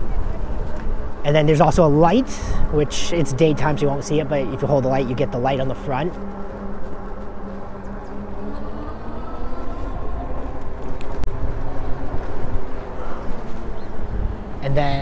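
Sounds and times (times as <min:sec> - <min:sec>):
wind rushing over microphone: 0:00.0 - 0:15.0.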